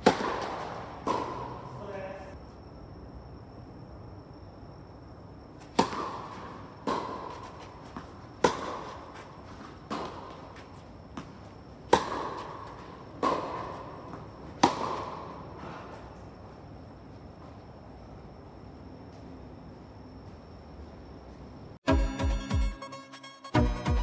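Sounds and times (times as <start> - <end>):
racket striking tennis ball: 0.0 - 1.8, 5.6 - 16.0.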